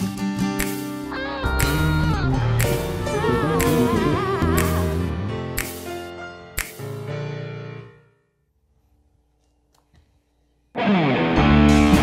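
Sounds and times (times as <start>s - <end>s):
rock band playing: 10.8s - 12.0s.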